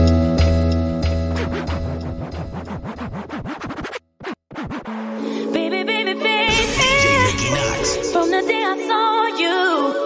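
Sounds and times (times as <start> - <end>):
dance music beat: 0.4 - 8.8
record scratches: 1.3 - 5.2, 6.5 - 8.4.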